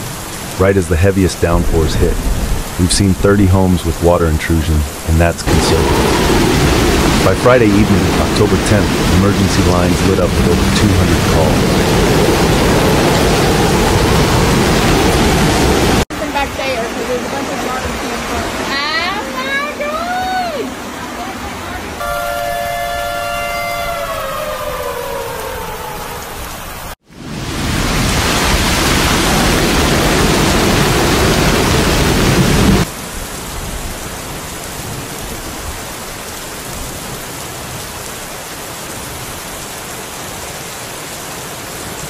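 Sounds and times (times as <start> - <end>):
rain: 0.0 - 42.0
rushing floodwater: 0.0 - 42.0
tone sliding down in pitch: 22.0 - 26.3.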